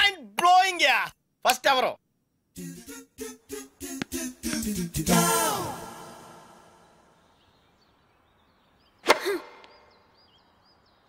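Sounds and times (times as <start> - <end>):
short vocal sound: 2.6 - 6.8
faint bird chirps: 6.6 - 11.0
tennis racket hitting ball: 9.0 - 9.8.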